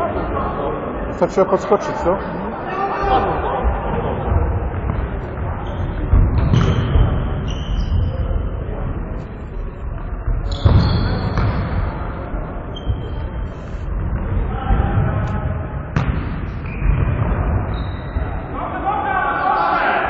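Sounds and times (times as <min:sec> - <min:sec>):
shoe squeaks: 0:07.4 - 0:08.3, 0:10.4 - 0:11.5, 0:12.7 - 0:13.8, 0:16.5 - 0:16.9, 0:17.7 - 0:18.5.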